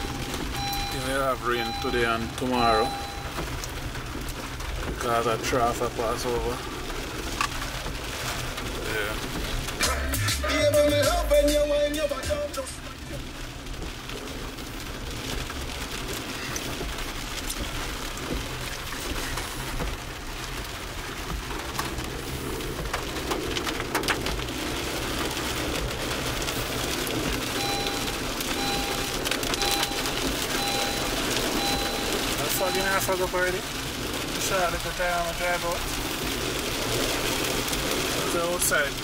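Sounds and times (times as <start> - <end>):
short beeps: 0.0 - 3.4, 27.6 - 33.2
rain on car roof: 0.0 - 39.0
road rumble: 0.0 - 39.0.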